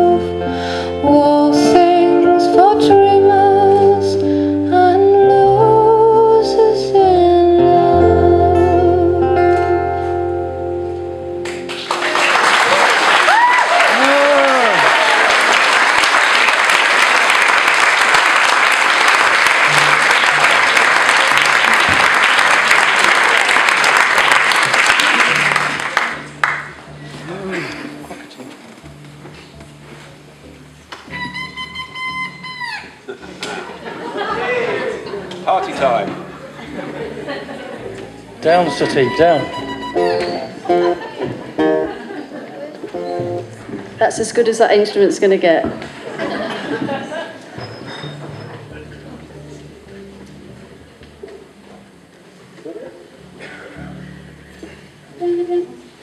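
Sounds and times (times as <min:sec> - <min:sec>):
short held instrument notes: 0:26.2 - 0:33.1, 0:38.0 - 0:41.9, 0:52.7 - 0:56.0.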